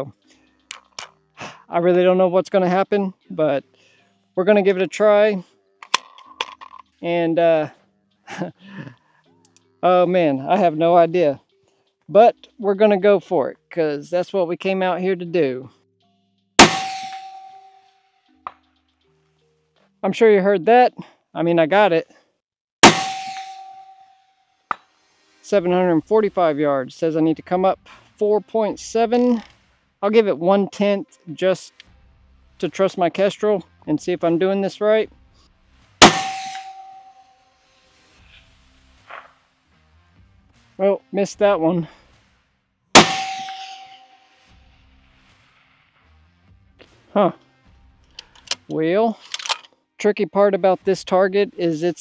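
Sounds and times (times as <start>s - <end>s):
bullet clanking on steel target: 0.7s - 1.2s, 5.8s - 6.9s, 16.6s - 17.8s, 22.8s - 24.1s, 36.0s - 37.2s, 43.0s - 44.4s, 48.2s - 49.7s
rifle shot crack: 16.6s - 17.5s, 36.0s - 37.0s, 43.0s - 44.1s
ringing tone: 16.9s - 18.0s, 36.1s - 37.4s, 43.0s - 44.4s.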